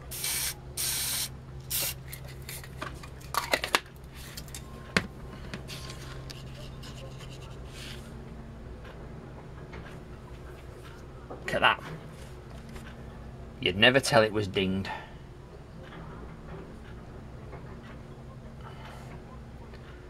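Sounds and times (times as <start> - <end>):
spray can hissing: 0.0 - 2.7
steady low hum: 0.0 - 20.0
handling and rubbing: 4.1 - 8.1.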